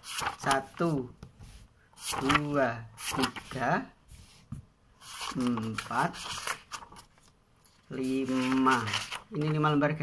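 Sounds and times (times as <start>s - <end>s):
paper sheets rustling: 0.0s - 9.8s.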